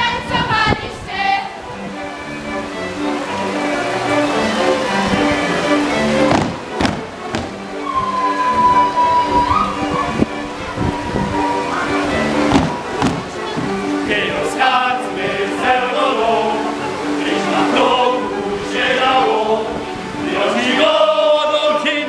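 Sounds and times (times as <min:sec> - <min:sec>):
folk dance music: 0:00.0 - 0:22.0
feet stamping on wooden stage: 0:06.3 - 0:07.6, 0:12.5 - 0:13.8.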